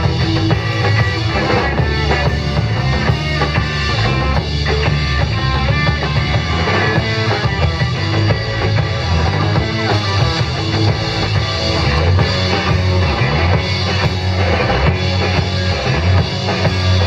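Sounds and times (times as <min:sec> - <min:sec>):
drum kit: 0:00.0 - 0:17.0
electric combo organ: 0:00.0 - 0:17.0
electric guitar: 0:00.0 - 0:17.0.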